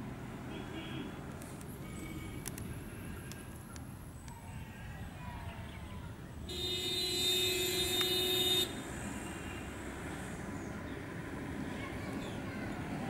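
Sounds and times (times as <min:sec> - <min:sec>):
vehicle horn blast: 0:06.5 - 0:09.4.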